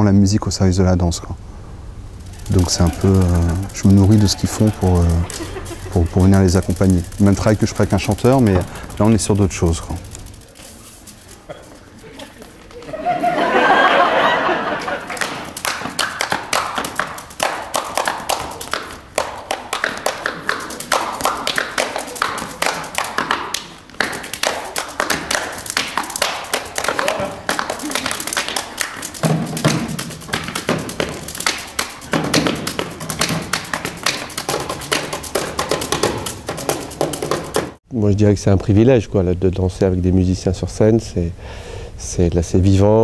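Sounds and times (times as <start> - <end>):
tap dancing on stage floor: 15.0 - 37.8.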